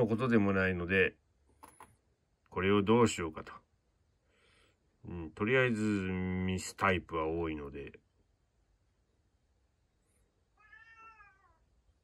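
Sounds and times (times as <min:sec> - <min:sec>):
cat meowing faintly: 0:10.5 - 0:11.8.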